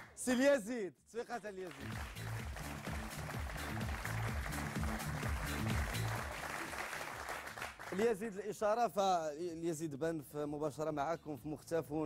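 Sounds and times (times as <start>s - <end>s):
studio audience applauding: 0.0s - 0.6s, 1.4s - 8.2s.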